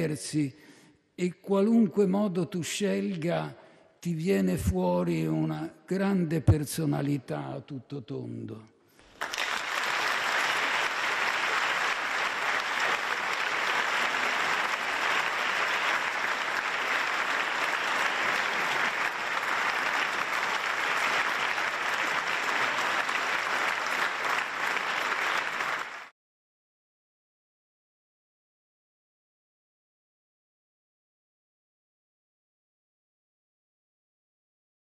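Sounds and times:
audience applauding: 0:09.0 - 0:26.1.

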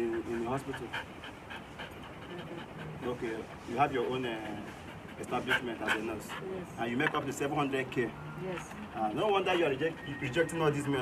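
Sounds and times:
dog panting: 0:00.0 - 0:11.0.

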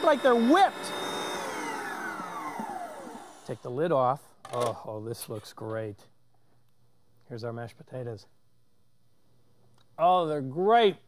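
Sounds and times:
mixer motor whining: 0:00.0 - 0:03.7.

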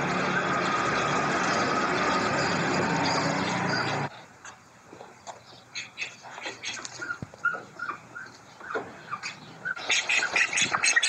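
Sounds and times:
ducks quacking: 0:05.8 - 0:11.0.

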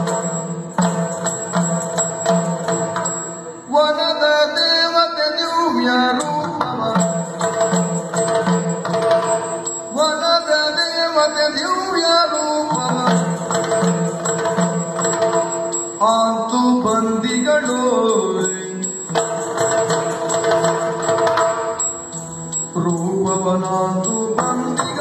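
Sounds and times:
drumming: 0:00.0 - 0:03.6, 0:06.2 - 0:25.0
man singing long held notes: 0:22.8 - 0:25.0.

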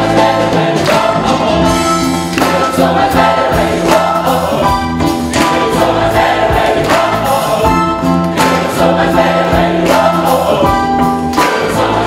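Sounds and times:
band accompaniment with beat: 0:00.0 - 0:12.0
gospel choir singing in harmony: 0:00.0 - 0:12.0.

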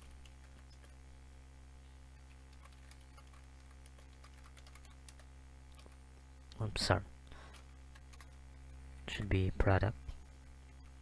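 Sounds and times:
keyboard typing: 0:00.0 - 0:01.0, 0:02.2 - 0:06.0, 0:07.5 - 0:08.4
steady low hum: 0:00.0 - 0:11.0.

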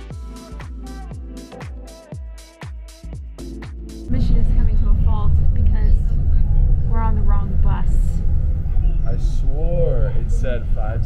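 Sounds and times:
bus engine rumble: 0:04.1 - 0:11.0
people talking: 0:04.1 - 0:11.0
road noise: 0:04.1 - 0:11.0.

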